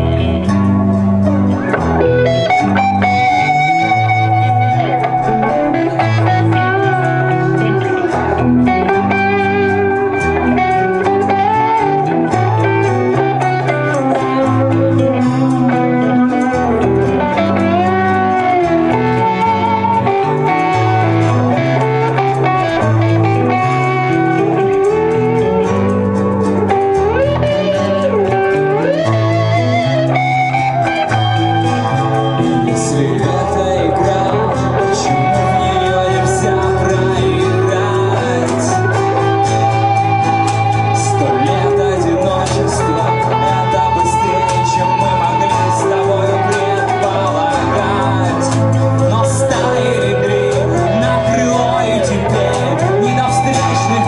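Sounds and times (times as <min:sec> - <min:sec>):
bass guitar: 0:00.0 - 0:54.0
lead electric guitar melody: 0:00.0 - 0:54.0
strummed guitar: 0:00.0 - 0:54.0.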